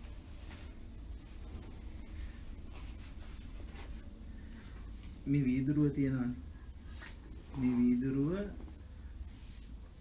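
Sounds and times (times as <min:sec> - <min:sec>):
faint rustles: 0:00.0 - 0:10.0
low room hum: 0:00.0 - 0:10.0.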